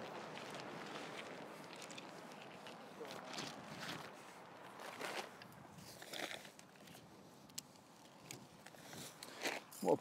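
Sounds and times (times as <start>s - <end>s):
tent fabric and poles rustling: 0.0s - 10.0s.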